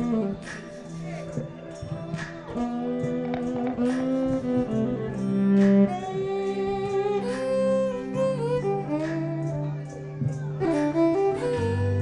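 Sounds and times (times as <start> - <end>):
low sustained accompaniment: 0.0 - 12.0
violin playing slow melody: 0.0 - 12.0.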